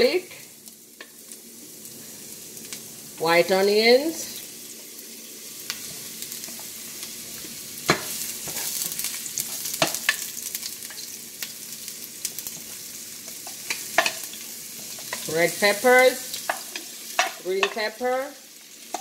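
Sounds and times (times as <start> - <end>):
vegetables sizzling in oil: 0.0 - 19.0.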